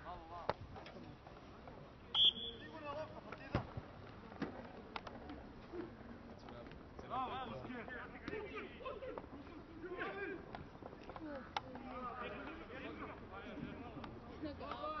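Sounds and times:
referee's whistle: 2.1 - 2.8.

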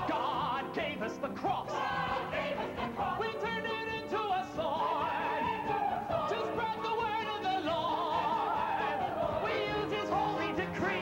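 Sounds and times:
singing with wide vibrato: 0.0 - 11.0.

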